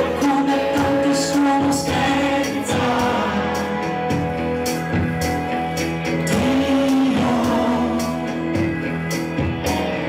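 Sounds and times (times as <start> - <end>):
live pop band playing: 0.0 - 10.0.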